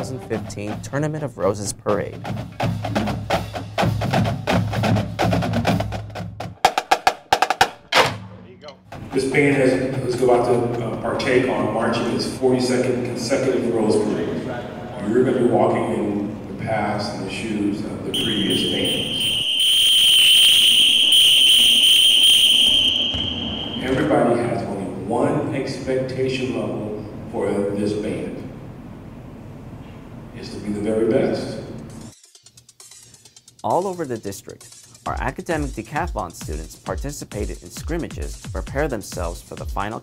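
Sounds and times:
man's voice: 0:00.0 - 0:02.2, 0:08.5 - 0:19.2, 0:33.6 - 0:40.0
marching drumline: 0:00.0 - 0:11.5, 0:35.2 - 0:40.0
high-pitched whistle blast: 0:18.2 - 0:24.7
loud drum hit: 0:23.1 - 0:25.0.

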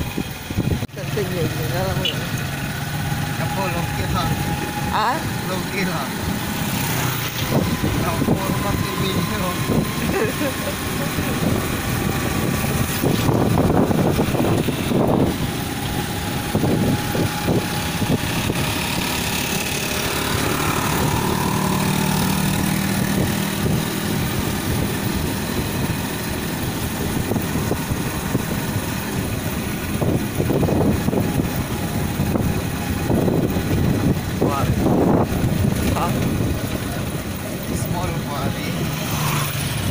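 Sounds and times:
road and wind noise: 0:00.0 - 0:39.9
vehicle engine running: 0:00.0 - 0:39.9.

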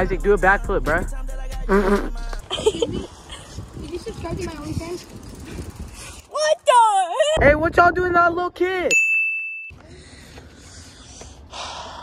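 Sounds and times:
faint outdoor background noise: 0:01.8 - 0:12.0
high ding: 0:08.9 - 0:09.8.

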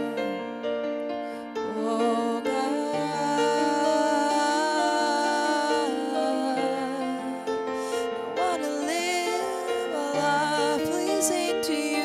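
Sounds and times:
keyboard playing slow chords: 0:00.0 - 0:12.0.

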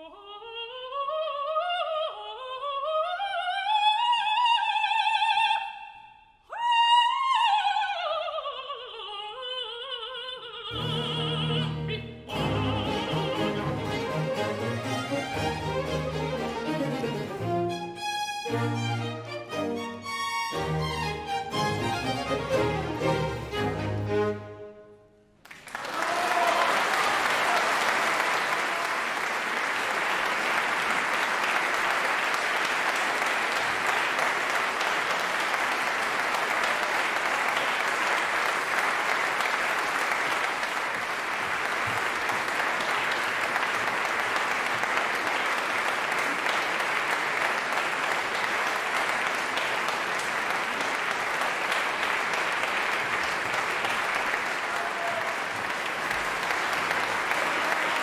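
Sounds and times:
audience applauding: 0:25.4 - 0:58.0.

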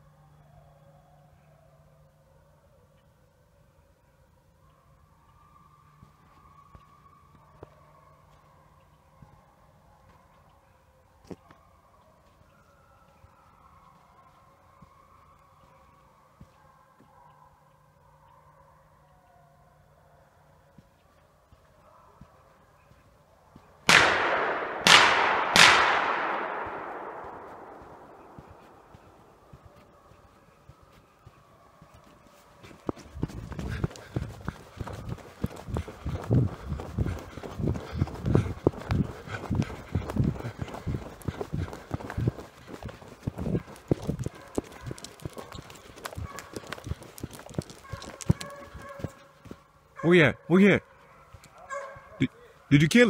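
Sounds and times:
running footsteps on dirt road: 0:05.2 - 0:18.3, 0:20.5 - 0:23.8, 0:26.2 - 0:50.1, 0:50.8 - 0:52.8
echoing gunshots: 0:23.9 - 0:29.3.

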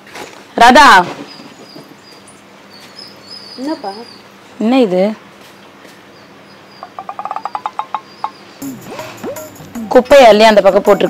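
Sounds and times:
high bird-like chirps: 0:01.3 - 0:04.3, 0:06.2 - 0:10.3.

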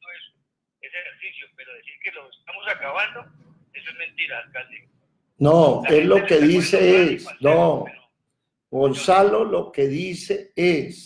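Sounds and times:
person talking on phone speaker: 0:00.0 - 0:08.2.

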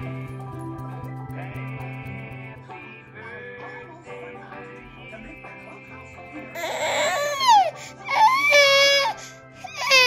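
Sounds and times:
baby crying: 0:06.6 - 0:10.0.

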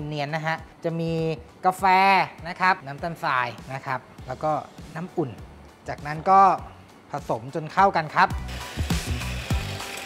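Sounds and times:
electric hand mixer running: 0:08.3 - 0:10.0.

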